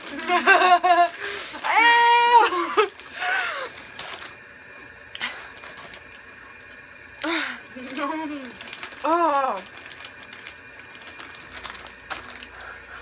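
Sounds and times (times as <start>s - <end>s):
woman squealing: 1.6s - 2.5s.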